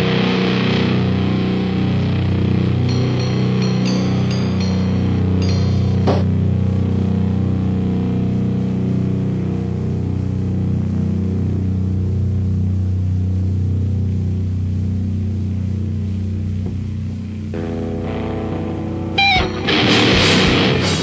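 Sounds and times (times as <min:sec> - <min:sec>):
metal guitar chord drone: 0:00.0 - 0:21.0.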